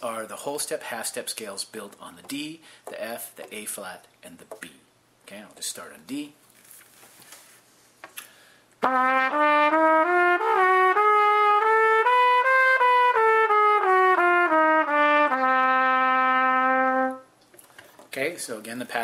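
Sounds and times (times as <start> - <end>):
trumpet playing a scale: 8.8 - 17.3.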